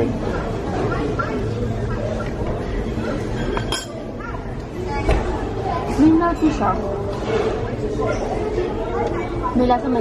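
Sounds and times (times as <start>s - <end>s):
murmur of voices: 0.0s - 10.0s
tableware clinking: 3.1s - 4.1s.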